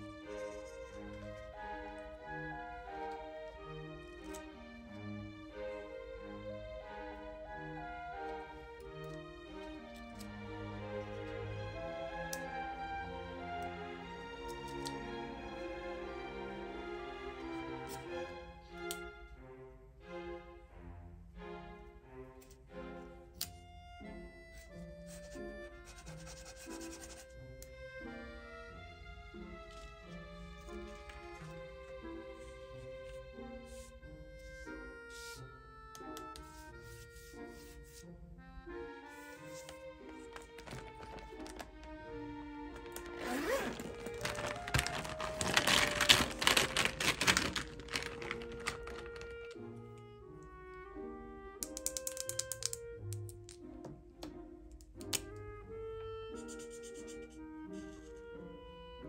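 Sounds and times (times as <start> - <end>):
soft background music: 0.0 - 59.0
plastic markers clicking together: 4.2 - 4.5, 14.4 - 15.0, 51.6 - 53.6, 54.7 - 55.4
tweezer tip scratching on paper: 25.0 - 27.4, 56.3 - 58.2.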